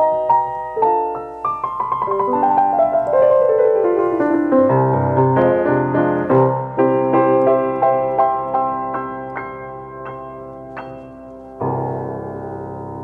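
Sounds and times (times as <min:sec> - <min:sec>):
grand piano notes: 0:00.0 - 0:13.0.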